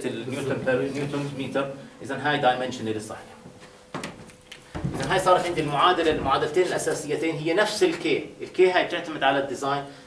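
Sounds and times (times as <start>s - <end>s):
faint steady hum: 0.0s - 10.0s
person speaking: 5.0s - 9.6s.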